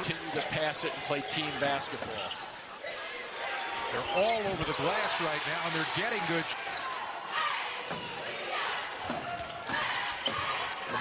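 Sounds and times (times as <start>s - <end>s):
crowd noise in large hall: 0.0s - 11.0s.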